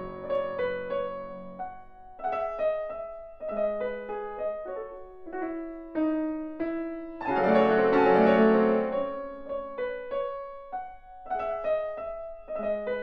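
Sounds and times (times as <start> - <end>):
piano duo playing: 0.0 - 13.0.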